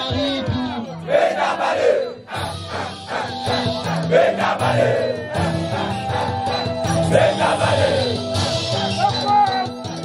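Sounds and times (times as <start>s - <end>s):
man calling through a microphone: 0.0s - 1.2s, 8.8s - 9.9s
crowd shouting and cheering: 0.0s - 10.0s.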